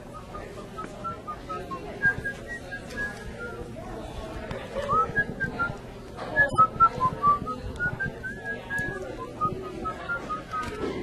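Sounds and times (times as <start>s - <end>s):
person whistling a tune: 0.2s - 3.6s, 4.8s - 5.7s, 6.3s - 10.8s.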